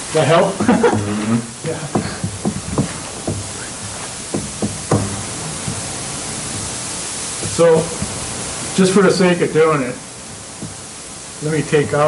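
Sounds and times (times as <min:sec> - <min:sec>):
room noise hiss: 0:00.0 - 0:12.0
short knocks: 0:00.6 - 0:08.4, 0:10.4 - 0:11.0.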